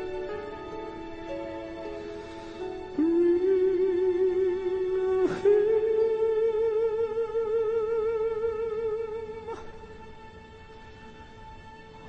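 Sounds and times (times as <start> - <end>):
slow sad ballad music: 0.0 - 12.0.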